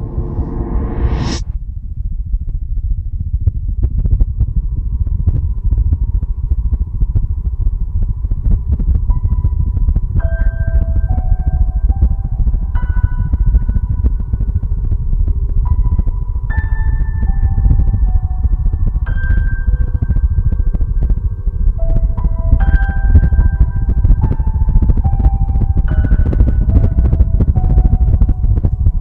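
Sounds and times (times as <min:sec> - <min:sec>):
low rumbling drone: 0:00.0 - 0:29.0
slow melody of held notes: 0:09.0 - 0:29.0.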